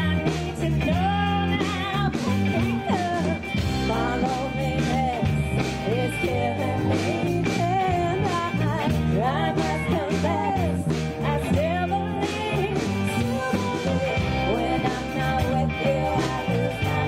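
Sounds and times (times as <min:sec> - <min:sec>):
bass guitar: 0:00.0 - 0:17.0
drums: 0:00.0 - 0:17.0
electric guitars: 0:00.0 - 0:17.0
woman singing lead: 0:00.0 - 0:17.0.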